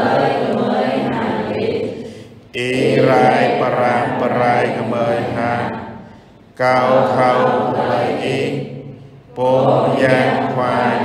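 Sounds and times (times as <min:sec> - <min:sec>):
slow chanted singing: 0:00.0 - 0:11.0.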